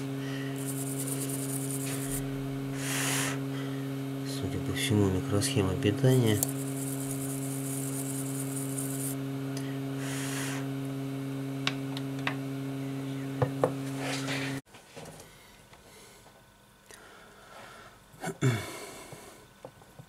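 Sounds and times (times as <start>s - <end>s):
steady electrical hum: 0.0s - 20.0s
brushing: 0.6s - 2.3s, 6.3s - 9.2s.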